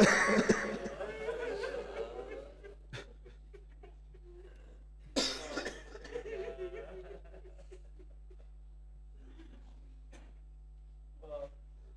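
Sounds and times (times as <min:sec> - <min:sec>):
man coughing: 0:00.0 - 0:01.0, 0:05.2 - 0:06.2.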